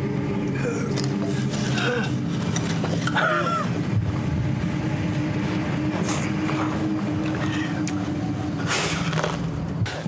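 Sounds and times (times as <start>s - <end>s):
held hum: 0.0s - 9.9s
low rumbling drone: 0.0s - 10.0s.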